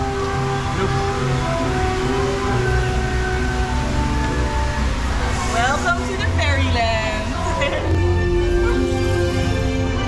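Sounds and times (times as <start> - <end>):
low rumble of moving ride: 0.0 - 10.0
soundtrack music with held notes: 0.0 - 10.0.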